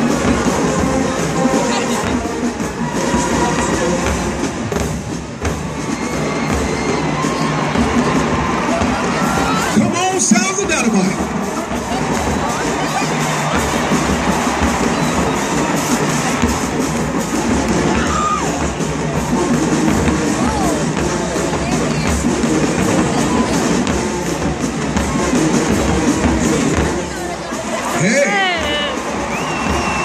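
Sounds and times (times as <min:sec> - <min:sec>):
bass drum beat: 0:00.0 - 0:30.0
crowd cheering: 0:00.0 - 0:30.0
marching band playing: 0:00.0 - 0:30.0.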